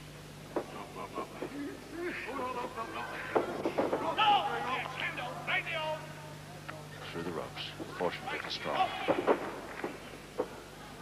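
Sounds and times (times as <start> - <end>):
low recording hum: 0.0 - 11.0.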